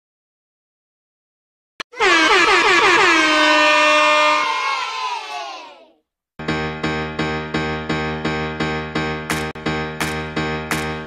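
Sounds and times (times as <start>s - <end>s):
air horn blasts: 1.8s - 4.8s.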